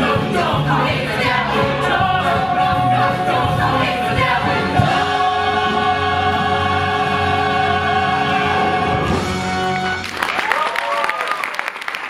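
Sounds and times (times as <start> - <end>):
ensemble singing: 0.0 - 9.3
instrumental accompaniment: 0.0 - 10.2.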